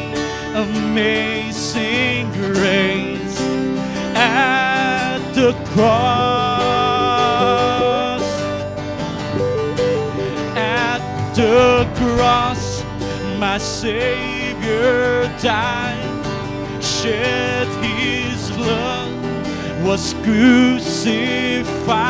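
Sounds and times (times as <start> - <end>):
guitar accompaniment: 0.0 - 22.0
choir singing: 5.8 - 22.0.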